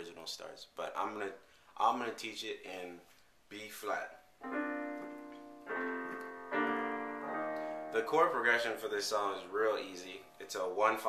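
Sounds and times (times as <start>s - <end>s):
digital piano chords: 4.4s - 11.0s.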